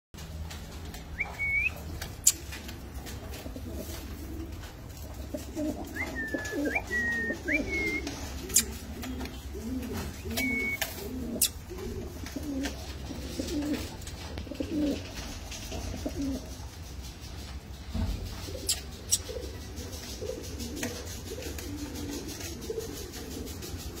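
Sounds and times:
pigeons cooing: 0:00.8 - 0:24.0.

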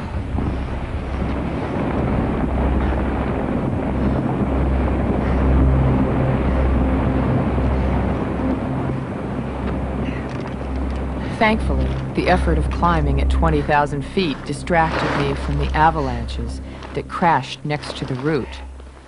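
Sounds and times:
avalanche roaring: 0:00.0 - 0:19.0
wind: 0:00.0 - 0:19.0.

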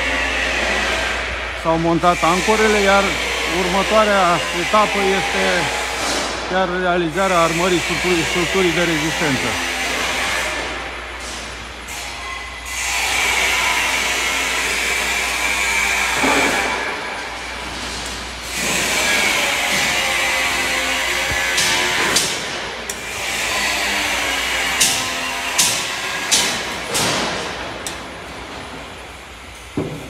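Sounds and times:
construction machinery whine: 0:00.0 - 0:30.0
sharp metallic knocks: 0:24.7 - 0:27.5.

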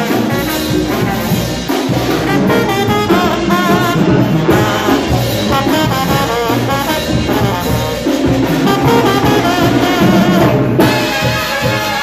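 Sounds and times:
brass band playing: 0:00.0 - 0:12.0.

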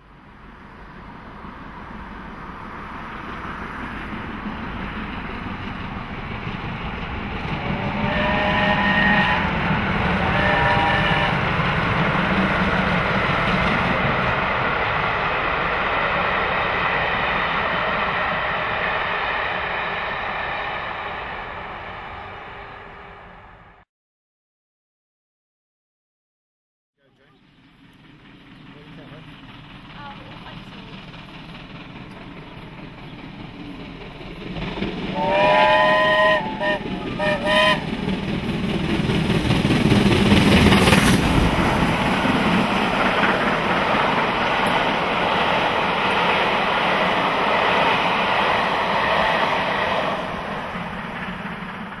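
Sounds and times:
steam locomotive passing: 0:00.0 - 0:23.8, 0:27.0 - 0:52.0
steam whistle blasts: 0:07.8 - 0:11.4, 0:35.1 - 0:37.9.

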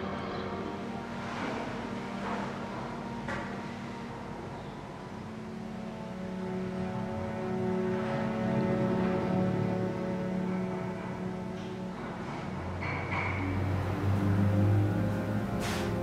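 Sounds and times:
low ambient drone: 0:00.0 - 0:16.0.

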